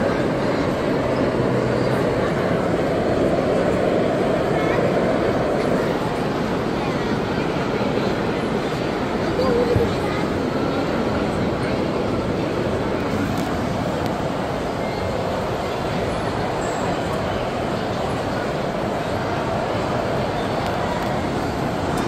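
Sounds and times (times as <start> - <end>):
indistinct voices talking: 0.0 - 22.0
steady indoor hum: 0.0 - 22.0.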